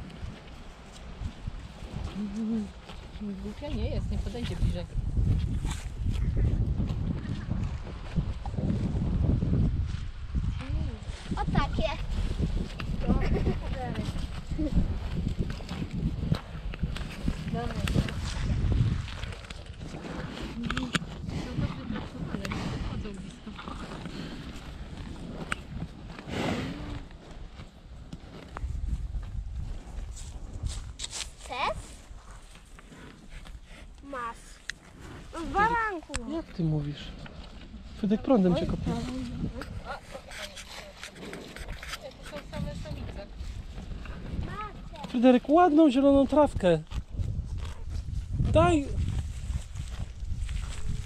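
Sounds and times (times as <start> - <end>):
cows tearing and chewing grass: 0.0 - 51.0
wind rumble on microphone: 0.0 - 51.0.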